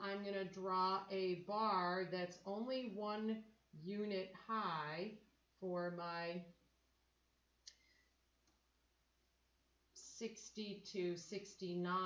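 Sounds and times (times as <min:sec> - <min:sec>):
faint click: 0:07.6 - 0:08.6.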